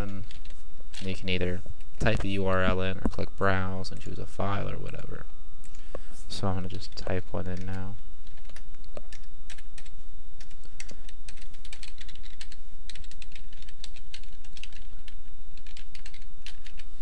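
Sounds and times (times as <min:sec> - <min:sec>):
computer keyboard typing: 0:00.0 - 0:01.2, 0:06.9 - 0:16.9
steady low hum: 0:00.0 - 0:17.0.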